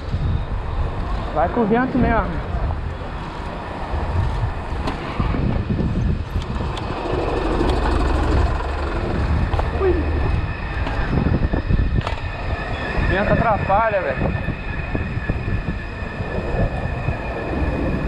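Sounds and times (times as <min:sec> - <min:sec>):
bike tyres rolling on street: 0:00.0 - 0:18.0
wind buffeting microphone: 0:00.0 - 0:18.0.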